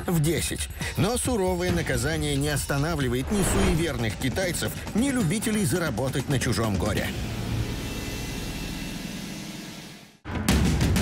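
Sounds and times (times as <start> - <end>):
rushing rumbling drone: 3.0 - 4.2.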